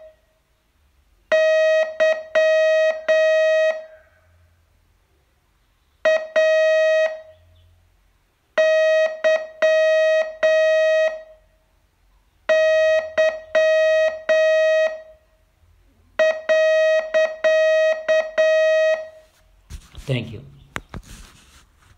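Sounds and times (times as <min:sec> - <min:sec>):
morse code beeps: 0:01.3 - 0:03.9, 0:06.0 - 0:07.4, 0:08.6 - 0:11.4, 0:12.5 - 0:15.2, 0:16.2 - 0:19.2.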